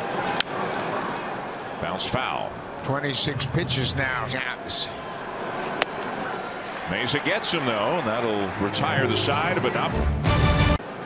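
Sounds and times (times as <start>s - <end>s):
crowd murmuring: 1.8s - 10.0s.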